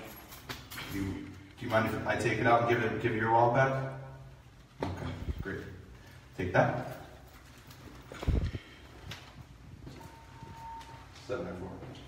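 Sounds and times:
short steady beep: 9.9s - 11.2s.

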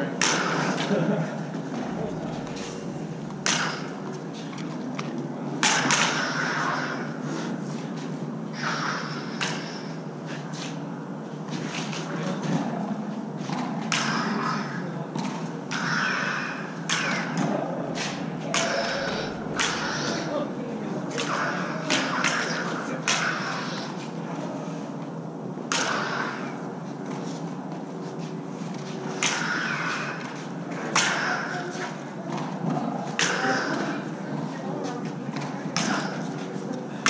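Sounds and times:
lightsaber electric hum: 0.0s - 37.0s
lightsaber blades clashing: 0.1s - 10.8s, 13.5s - 25.0s, 25.6s - 27.5s, 28.7s - 34.3s, 35.0s - 37.0s
lightsaber swings whooshing: 18.0s - 20.5s.

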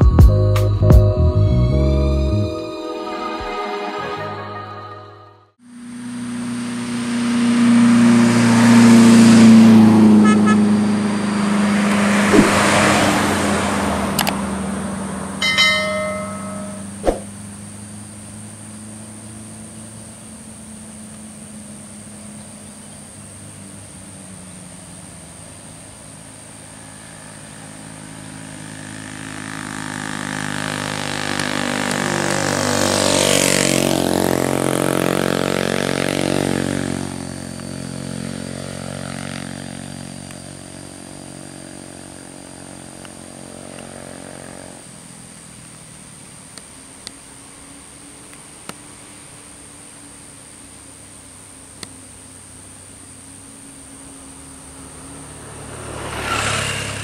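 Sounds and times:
bus engine: 0.0s - 57.0s
brief higher tone: 15.4s - 17.3s
heavy vehicle engine: 53.8s - 57.0s.

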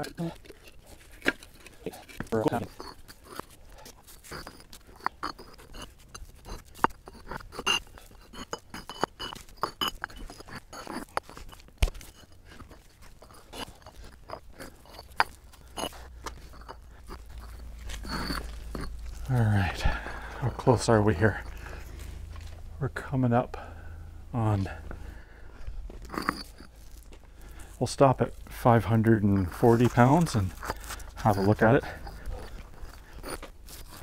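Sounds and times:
concrete blocks clacking: 0.0s - 22.5s, 25.9s - 34.0s
block scraping on block: 0.0s - 22.7s, 25.9s - 34.0s.

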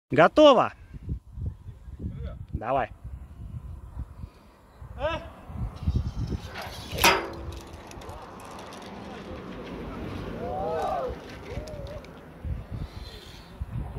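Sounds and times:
person yelling: 5.0s - 5.3s
sharp crack: 6.9s - 9.8s.

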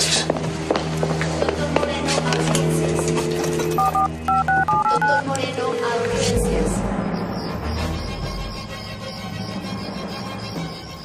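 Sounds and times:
telephone keypad beeps: 3.8s - 5.4s.

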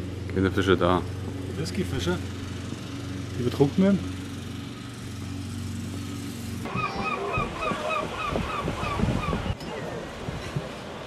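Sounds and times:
bird calling: 6.7s - 10.0s
waves on a rocky shore: 6.7s - 11.0s.

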